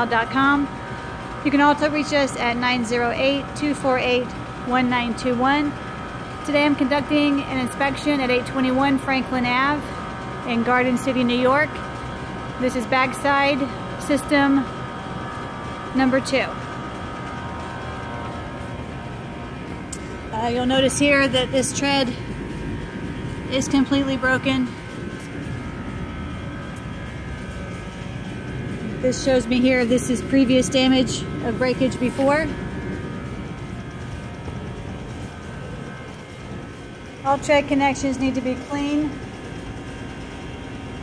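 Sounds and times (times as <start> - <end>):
drone of held tones: 0.0 - 41.0
faint steady hum: 0.0 - 41.0.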